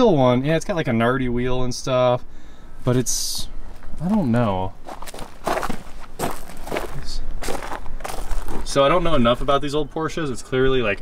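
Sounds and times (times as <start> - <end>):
footsteps on gravel: 3.7 - 8.9.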